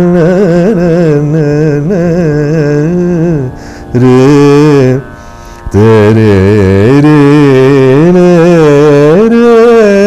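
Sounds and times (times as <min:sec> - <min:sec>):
man singing with bent notes: 0:00.0 - 0:10.0.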